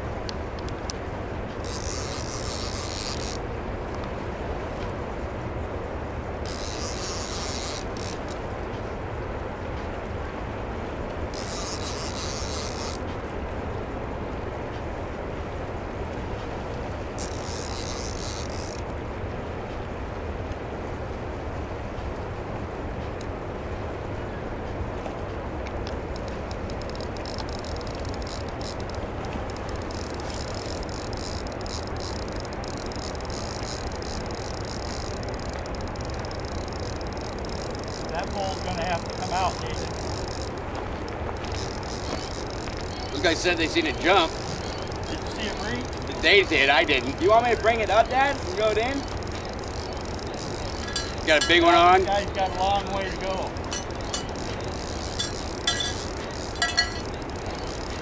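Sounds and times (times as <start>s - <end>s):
fast reel clicking: 1.6s - 3.4s, 6.4s - 8.4s, 11.3s - 13.0s, 17.2s - 18.9s, 26.2s - 58.0s
fishing reel drag buzzing: 1.6s - 4.0s, 6.4s - 8.5s, 11.3s - 13.1s, 16.8s - 18.9s, 25.9s - 58.0s.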